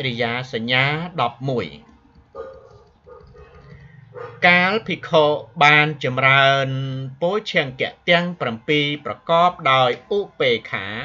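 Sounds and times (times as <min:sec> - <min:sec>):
person talking: 0:04.4 - 0:11.0.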